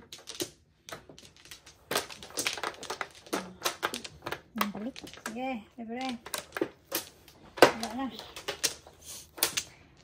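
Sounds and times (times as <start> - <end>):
mahjong tiles clacking: 0.0 - 10.0.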